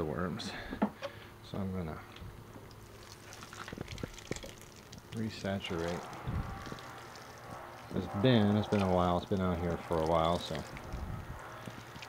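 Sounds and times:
water sprinkling from watering can: 0:02.6 - 0:12.0.

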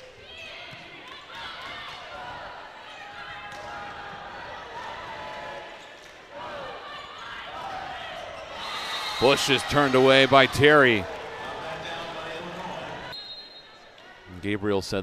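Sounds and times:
arena crowd noise: 0:00.0 - 0:15.0.

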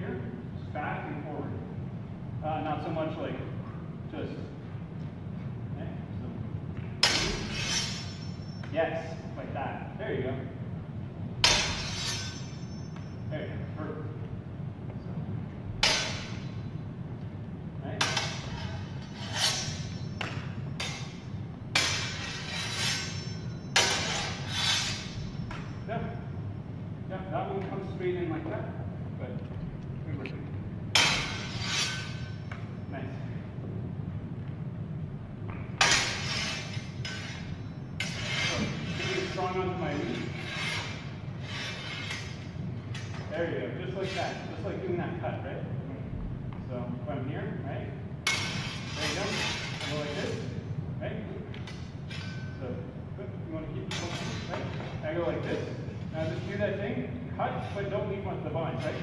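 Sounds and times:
swords clashing blade on blade: 0:07.0 - 0:09.1, 0:11.4 - 0:13.2, 0:15.8 - 0:16.6, 0:18.0 - 0:25.9, 0:30.9 - 0:32.8, 0:35.8 - 0:43.3, 0:48.2 - 0:50.5, 0:51.5 - 0:52.6, 0:53.9 - 0:55.6.

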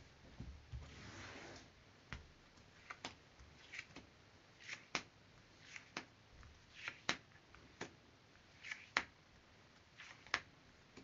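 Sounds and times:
cards sliding from a deck: 0:02.8 - 0:04.0, 0:04.6 - 0:06.1, 0:06.7 - 0:07.2, 0:08.6 - 0:09.1, 0:10.0 - 0:10.5.

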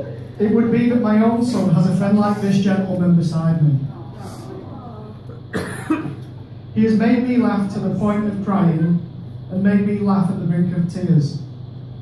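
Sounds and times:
person coughing: 0:05.3 - 0:06.2.

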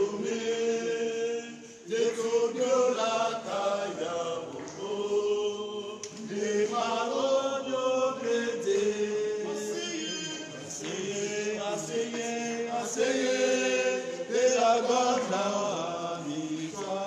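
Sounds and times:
choir chanting a hymn: 0:00.0 - 0:17.0
breath: 0:01.6 - 0:01.9.

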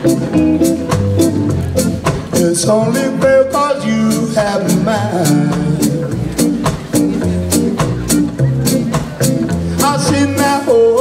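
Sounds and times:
live soul band music: 0:00.0 - 0:11.0.

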